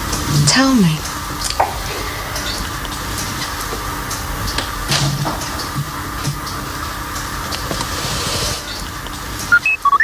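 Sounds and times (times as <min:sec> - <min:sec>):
steady background hum: 0:00.0 - 0:10.0.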